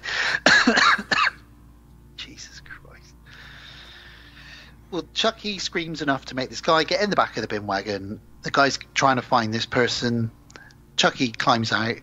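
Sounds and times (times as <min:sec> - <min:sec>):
man coughing: 0:00.2 - 0:01.4
soft breathy hiss: 0:02.2 - 0:05.0, 0:10.5 - 0:10.9.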